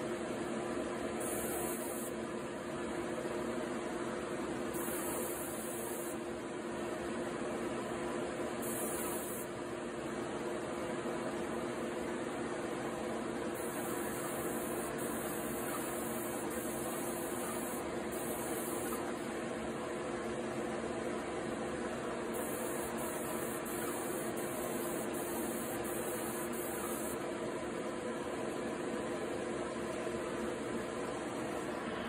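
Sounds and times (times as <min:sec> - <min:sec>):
paint sprayer humming and hissing: 0:01.0 - 0:03.0, 0:04.4 - 0:06.4, 0:08.4 - 0:09.6, 0:12.8 - 0:20.3, 0:22.0 - 0:27.4.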